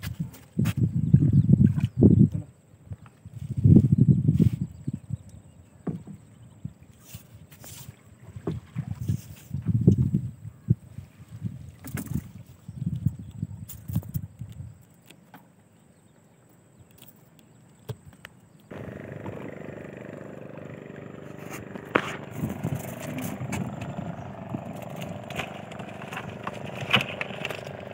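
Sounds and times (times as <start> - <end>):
boat motor running: 18.7 - 27.9
rumbling wind gusts: 18.7 - 27.9
water splashing: 18.7 - 27.9
clicks and clatter: 24.7 - 27.9.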